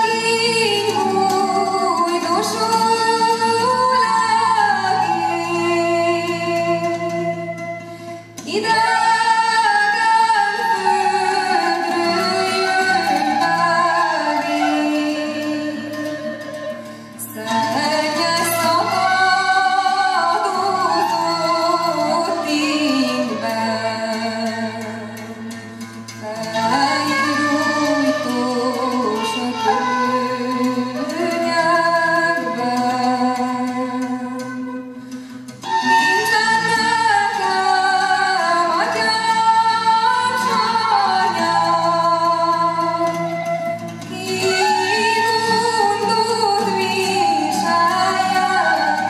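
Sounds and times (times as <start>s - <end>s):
woman singing folk song: 0.0s - 49.0s.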